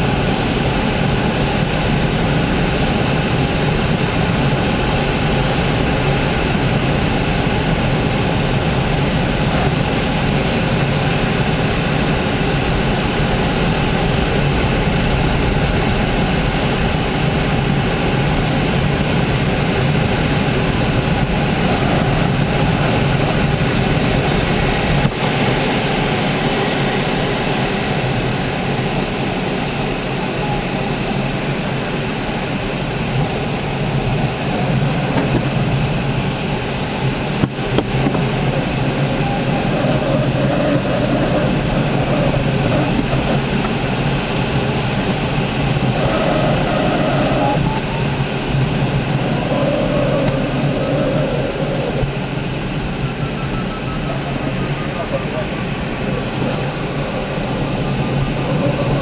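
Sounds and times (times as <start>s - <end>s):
rush of air over canopy: 0.0s - 59.0s.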